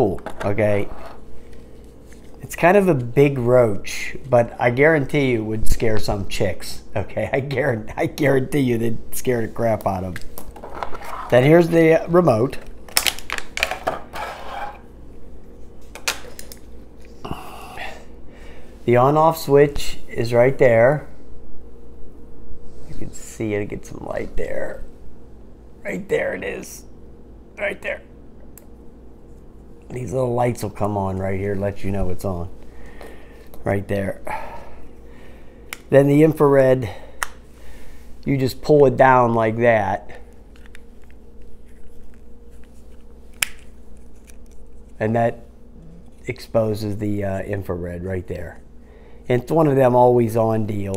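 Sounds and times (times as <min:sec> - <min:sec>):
plastic packaging crinkling: 0:12.7 - 0:13.8.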